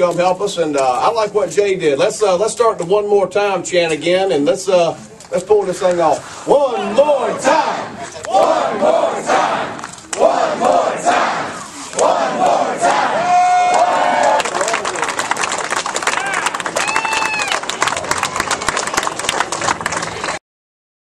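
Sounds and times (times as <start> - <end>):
crowd chanting: 6.7 - 14.4
crowd cheering and applause: 12.0 - 20.4
long shout: 13.1 - 15.0, 16.1 - 17.6.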